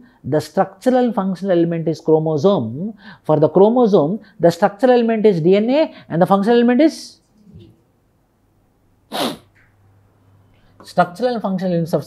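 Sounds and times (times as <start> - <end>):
man's sharp burst of breath: 9.1 - 9.5.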